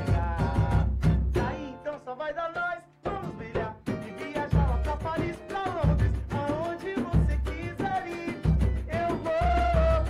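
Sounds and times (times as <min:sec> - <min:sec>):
samba band playing live: 0:00.0 - 0:01.8, 0:03.1 - 0:10.0
person singing: 0:00.0 - 0:10.0.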